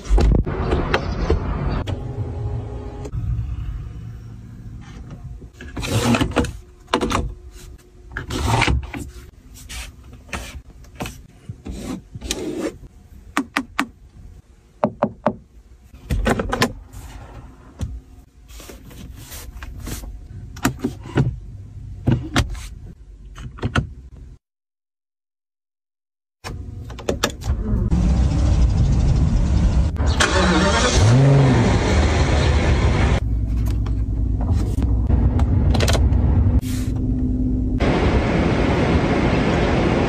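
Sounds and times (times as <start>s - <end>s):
car engine starting and revving: 27.5s - 33.2s.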